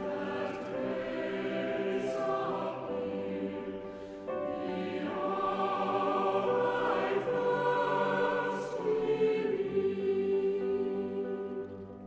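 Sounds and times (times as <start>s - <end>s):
church choir singing: 0.0s - 12.0s
piano: 0.0s - 12.0s.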